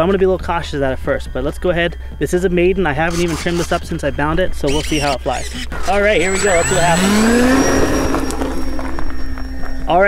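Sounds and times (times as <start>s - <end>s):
electric motor and propeller whine: 3.0s - 4.0s, 4.6s - 9.9s.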